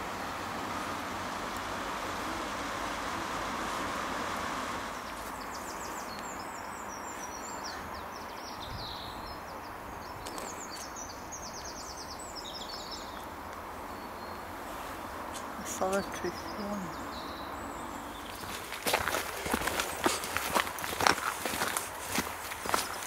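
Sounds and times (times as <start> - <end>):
steady outdoor rushing noise: 0.0 - 9.9, 13.2 - 23.0.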